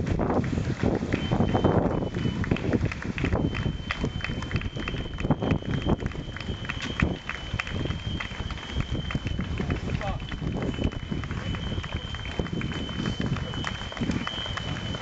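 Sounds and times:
runners' footsteps on asphalt: 0.0s - 15.0s.

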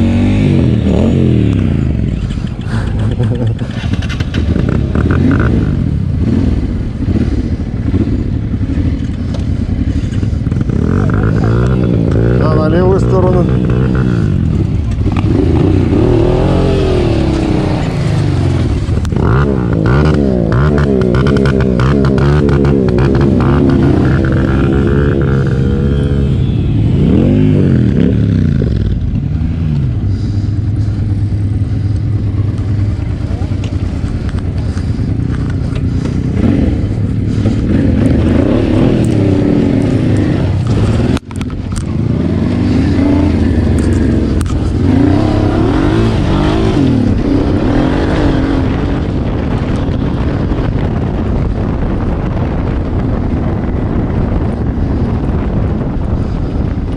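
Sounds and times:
motorcycle engine revving: 0.0s - 56.9s.

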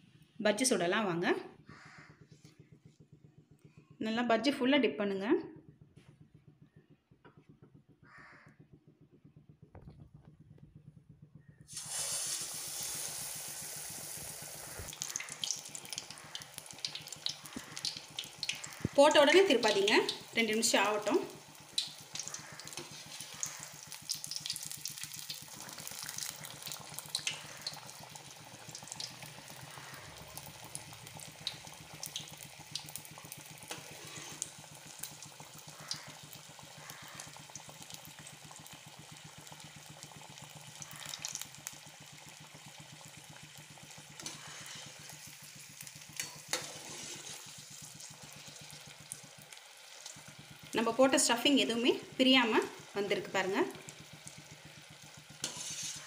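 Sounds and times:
food sizzling in hot oil: 11.7s - 56.0s.

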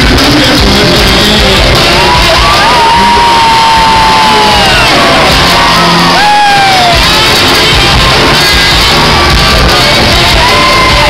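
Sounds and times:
electric guitar: 0.0s - 11.0s
zydeco band playing: 0.0s - 11.0s.

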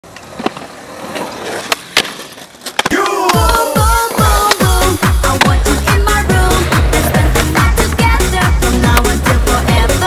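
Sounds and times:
skateboard clacks: 0.0s - 10.0s
skateboard wheels rolling on concrete: 0.0s - 10.0s.

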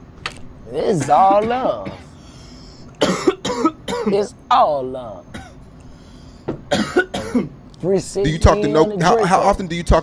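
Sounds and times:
man coughing: 0.9s - 2.2s, 3.0s - 4.3s, 5.3s - 5.6s, 6.7s - 7.6s.

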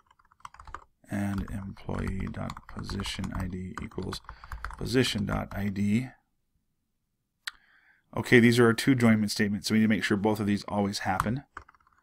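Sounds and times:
person speaking: 1.0s - 6.3s, 8.1s - 11.6s.

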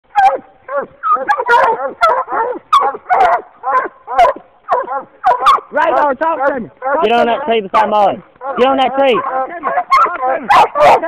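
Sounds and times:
hounds barking: 0.1s - 11.0s.

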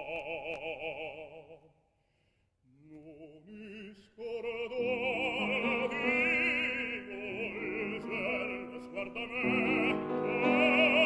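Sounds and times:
operatic tenor singing with vibrato: 0.0s - 1.7s, 2.7s - 11.0s.

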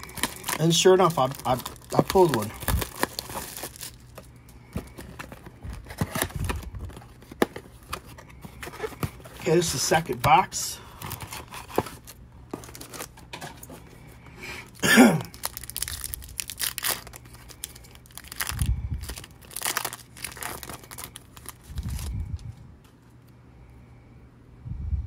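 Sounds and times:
foil wrapper tearing and crinkling: 0.0s - 13.4s, 14.6s - 22.2s.

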